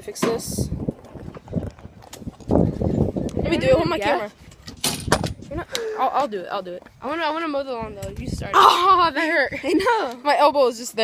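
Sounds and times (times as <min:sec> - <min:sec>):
phone microphone handling noise: 0:04.4 - 0:05.8.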